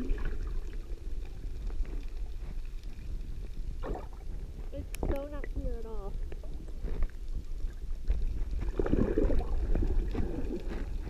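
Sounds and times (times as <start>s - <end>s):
muffled underwater rumble: 0.0s - 11.0s.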